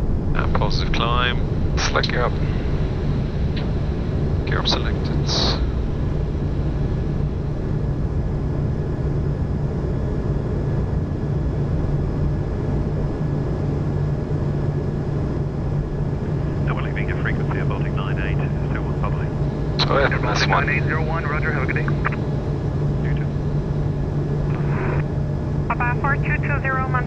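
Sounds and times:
aircraft engine noise: 0.0 - 27.0
steady low hum: 0.0 - 27.0.

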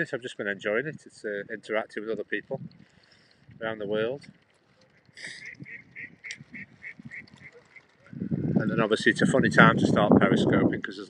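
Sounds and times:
waterfowl calling: 4.9 - 8.3.

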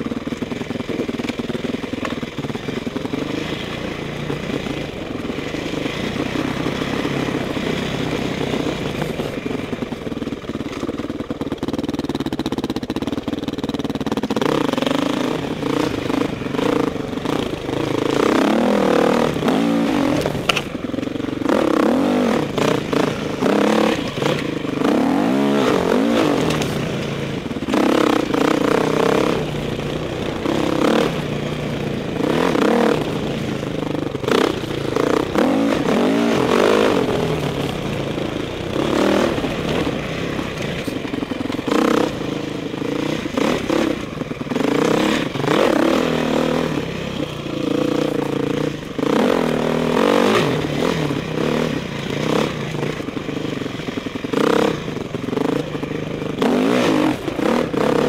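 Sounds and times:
dirt bike engine revving: 0.0 - 10.8, 11.6 - 58.0.

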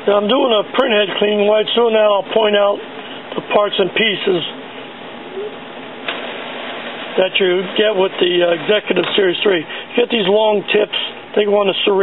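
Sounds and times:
printer mechanical noise: 0.0 - 12.0.

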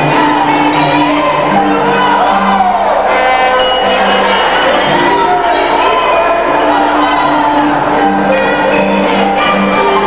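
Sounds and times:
xylophones and metallophones playing: 0.0 - 10.0.

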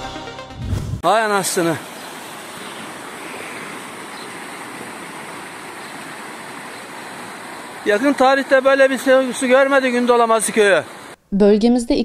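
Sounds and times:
floodwater rushing over road: 1.0 - 11.2.

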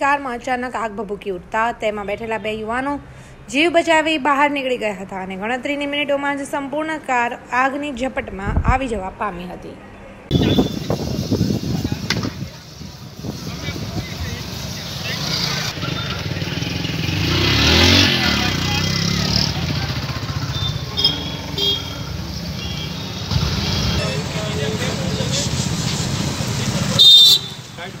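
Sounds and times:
traffic rumble: 0.0 - 28.0
car horn toots: 10.3 - 10.9, 20.5 - 22.0, 27.0 - 27.6
vehicle passing: 11.4 - 28.0
loud horn blast: 20.5 - 24.1.

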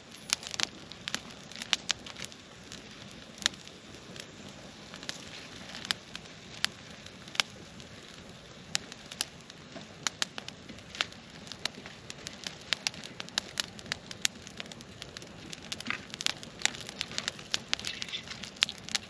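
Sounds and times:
campfire crackling and popping: 0.0 - 19.0.

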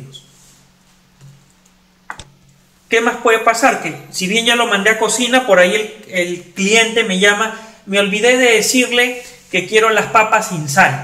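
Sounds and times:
faint low steady hum: 0.0 - 11.0.

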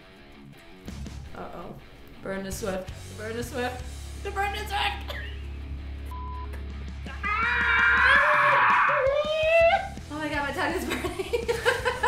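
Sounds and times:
censor bleep: 6.1 - 6.6
person yelling raspily: 7.1 - 9.9.

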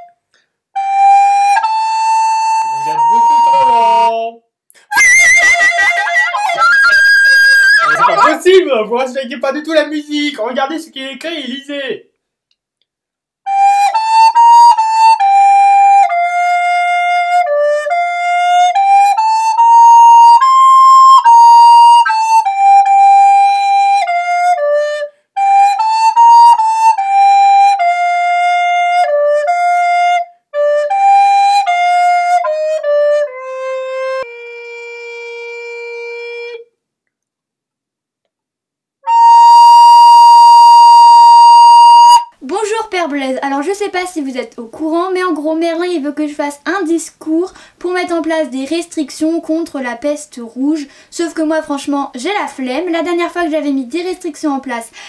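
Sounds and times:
solo flute melody: 0.8 - 4.3, 4.9 - 8.4, 13.5 - 36.7, 39.0 - 42.4
people talking: 2.7 - 4.4, 5.4 - 12.0, 42.4 - 55.0.

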